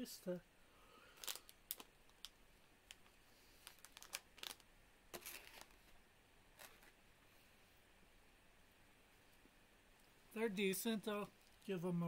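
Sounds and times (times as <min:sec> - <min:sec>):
plastic snack bag crinkling: 0:01.1 - 0:05.9.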